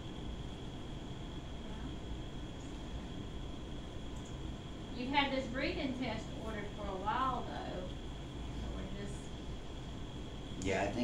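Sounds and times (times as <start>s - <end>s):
faint high-pitched whine: 0.0s - 11.0s
low rumble and hiss: 0.0s - 11.0s.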